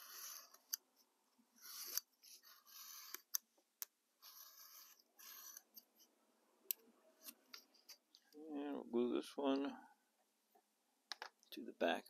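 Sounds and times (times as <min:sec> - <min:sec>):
knife scratching through card: 0:04.2 - 0:05.8.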